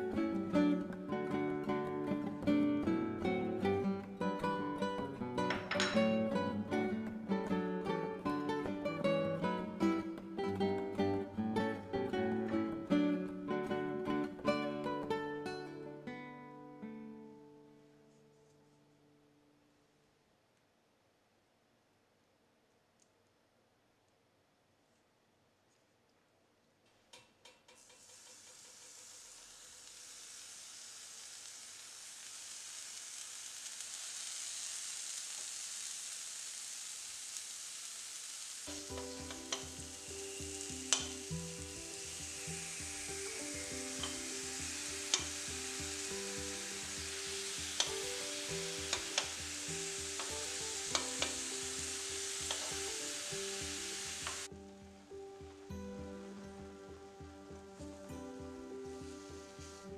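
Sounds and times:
fruit sizzling on grill: 0.0 - 16.0, 27.2 - 59.9.

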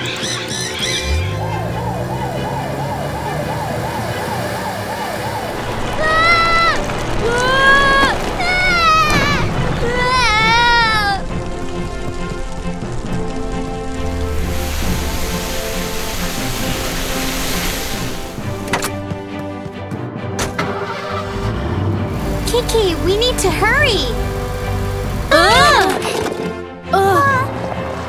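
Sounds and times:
cartoon background music: 0.0 - 6.8, 7.4 - 28.0
spraying water hiss: 14.0 - 18.6.

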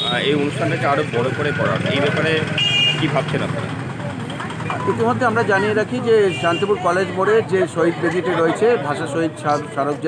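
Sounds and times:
street traffic rumble: 0.0 - 10.0
man speaking: 4.8 - 10.0.

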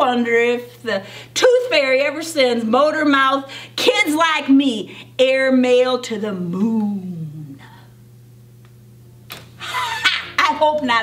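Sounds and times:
woman speaking: 0.0 - 7.8, 10.0 - 11.0
faint steady hum: 0.0 - 11.0.

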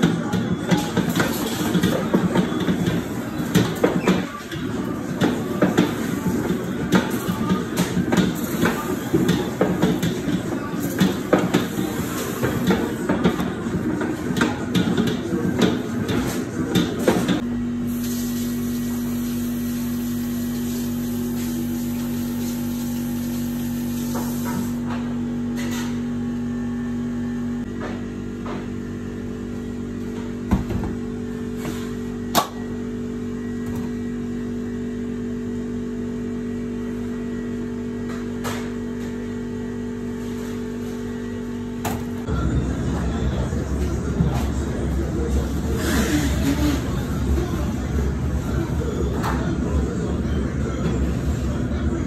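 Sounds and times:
machine hum: 38.8 - 52.0.

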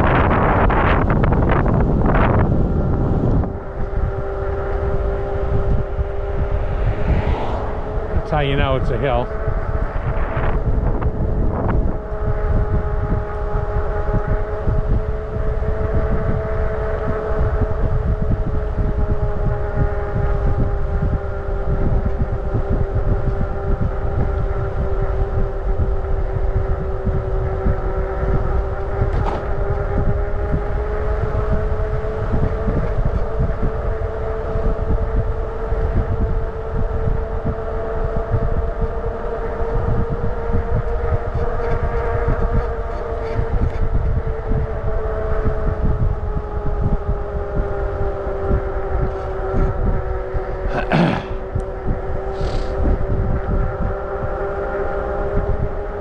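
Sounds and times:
motorcycle engine running: 0.0 - 8.3, 9.1 - 56.0
wind rumbling on microphone: 0.0 - 56.0.

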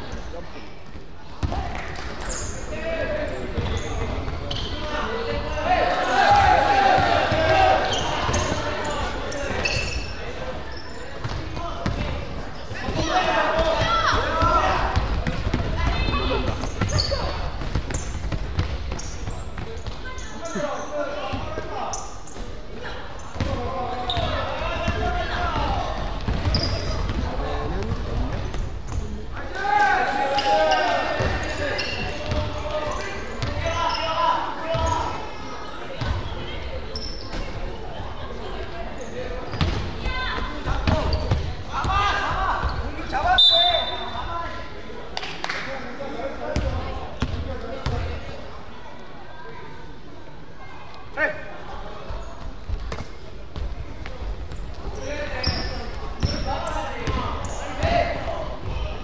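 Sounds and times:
players shouting: 5.0 - 9.4, 12.8 - 15.1, 29.4 - 33.0.

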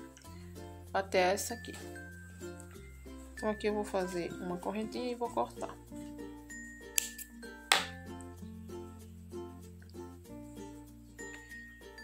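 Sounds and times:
soft instrumental background music: 0.0 - 12.0.

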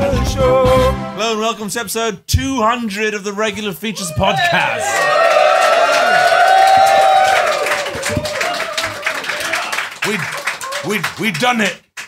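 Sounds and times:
person cheering: 3.9 - 11.2
audience clapping: 4.4 - 12.0.

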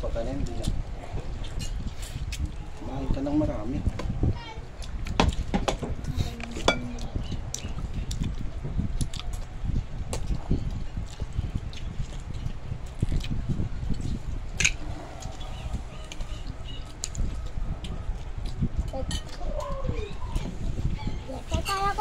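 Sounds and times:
children chewing: 0.0 - 22.0
steady low rumble: 0.0 - 22.0.

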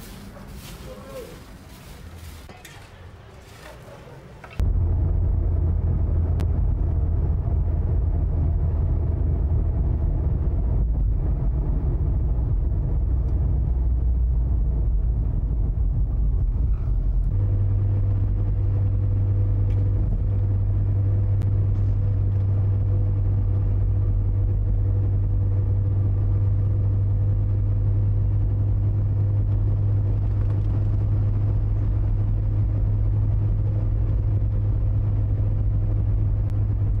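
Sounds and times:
car engine rumble: 0.0 - 37.0.

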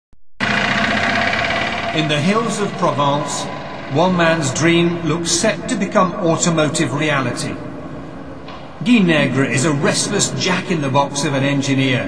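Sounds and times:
vehicle engine running: 0.4 - 5.5.

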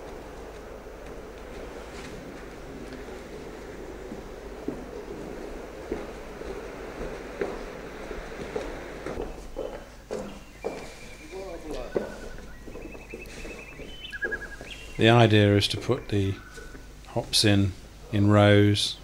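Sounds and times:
footsteps on wooden floor: 0.0 - 15.0
indistinct background voices: 0.0 - 18.9
steady hiss: 0.0 - 19.0.

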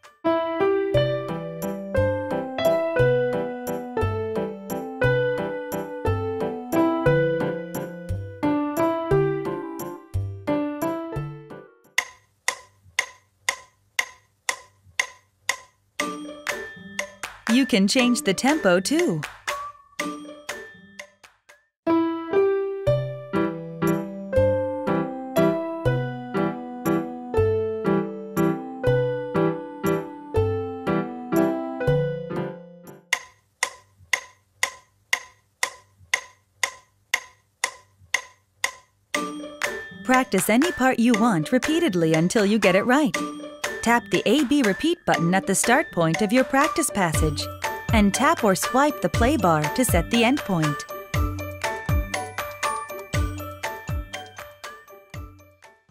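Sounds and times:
electronic keyboard notes: 0.6 - 11.8, 22.0 - 33.1
electronic metronome ticking: 12.0 - 21.6, 32.9 - 55.7.

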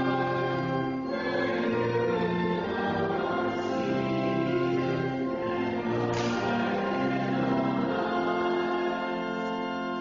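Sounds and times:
group singing a hymn: 0.0 - 10.0.

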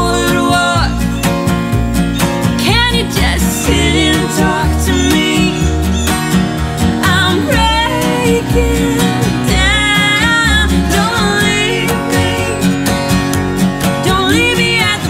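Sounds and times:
woman singing: 0.0 - 1.2, 2.6 - 5.8, 7.0 - 12.8, 14.0 - 15.0
plucked upright bass: 0.0 - 15.0
strummed acoustic guitars: 0.0 - 15.0.

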